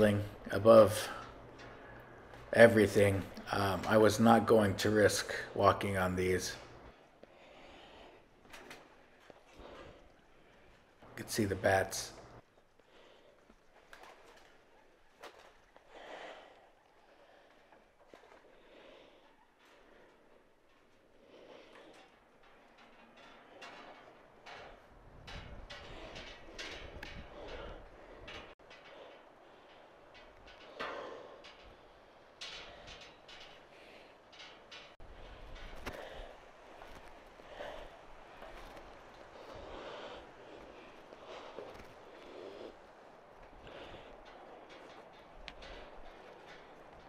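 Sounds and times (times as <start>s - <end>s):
footsteps on metal stair grating: 0.0s - 47.0s
man breathing hard: 6.7s - 11.1s, 15.3s - 47.0s.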